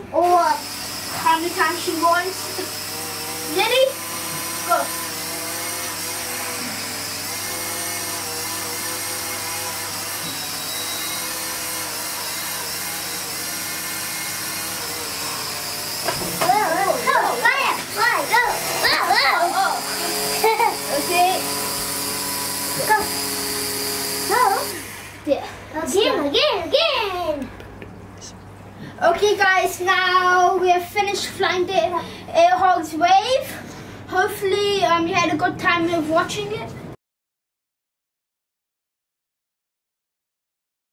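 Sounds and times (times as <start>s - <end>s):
toy motor and propeller whine: 0.2s - 25.3s.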